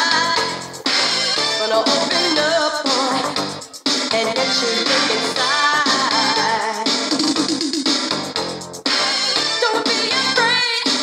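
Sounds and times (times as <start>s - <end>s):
dance music from vinyl record: 0.0s - 11.0s.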